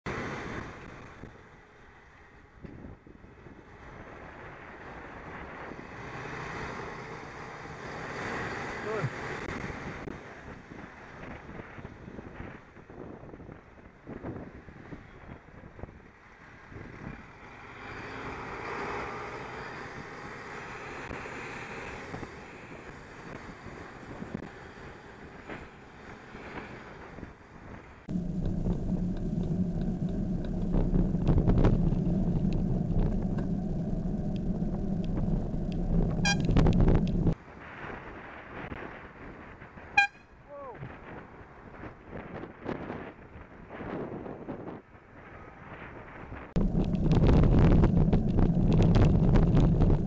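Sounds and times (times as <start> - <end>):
nearby cars: 0.1 - 12.7, 14.7 - 38.4, 46.6 - 50.0
wind rushing over microphone: 2.5 - 17.9, 18.8 - 40.0, 40.6 - 50.0
bus engine running: 16.4 - 37.4, 46.6 - 50.0.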